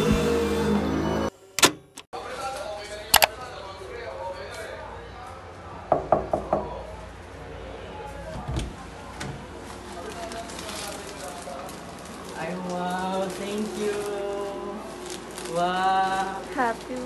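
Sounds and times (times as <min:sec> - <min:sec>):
knuckles knocking on wooden door: 0:05.9 - 0:06.7.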